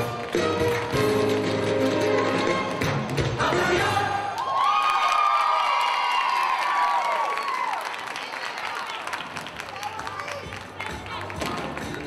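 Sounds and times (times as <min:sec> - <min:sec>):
music: 0:00.0 - 0:04.4, 0:09.4 - 0:12.0
audience cheering and screaming: 0:04.3 - 0:08.2
clapping: 0:04.4 - 0:12.0.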